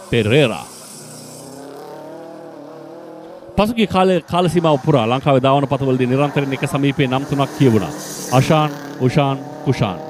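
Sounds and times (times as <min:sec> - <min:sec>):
car engine running hard: 0:00.0 - 0:10.0.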